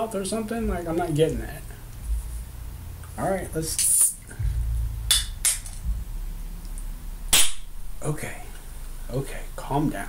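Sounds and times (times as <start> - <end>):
handling thump: 4.4 - 8.0.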